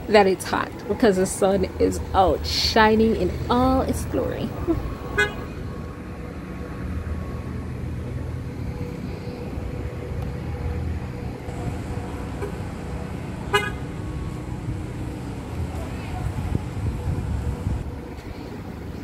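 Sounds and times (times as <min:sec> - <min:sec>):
cars driving past: 0:00.0 - 0:19.0
car horn toots: 0:05.2 - 0:05.5, 0:13.5 - 0:13.8.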